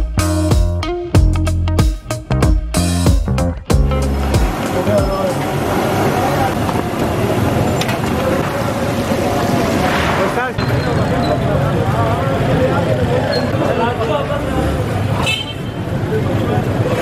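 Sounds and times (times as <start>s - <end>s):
steady traffic noise: 3.6s - 17.0s.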